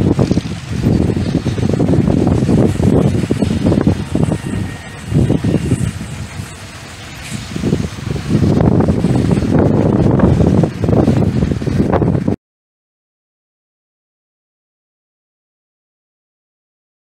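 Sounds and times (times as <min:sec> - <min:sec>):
train rolling past: 0:00.0 - 0:12.4
wind rumbling on microphone: 0:00.0 - 0:12.4.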